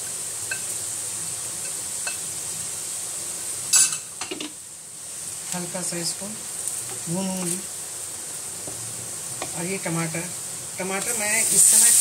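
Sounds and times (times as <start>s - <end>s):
onions sizzling in a pan: 0.0s - 12.0s.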